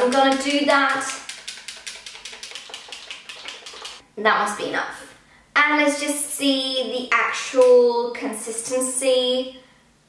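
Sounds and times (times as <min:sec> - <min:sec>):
bottle shaken rattling: 0:00.0 - 0:04.0.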